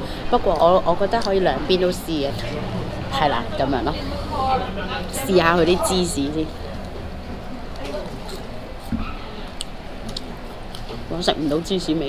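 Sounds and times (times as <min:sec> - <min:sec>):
faint background voices: 0:00.0 - 0:12.0
quiet eating sounds: 0:00.3 - 0:11.8.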